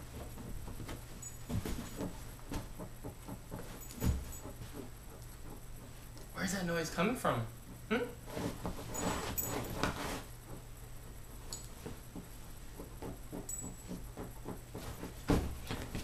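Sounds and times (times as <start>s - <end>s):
scratching on fabric: 0.0s - 7.0s, 8.2s - 16.0s.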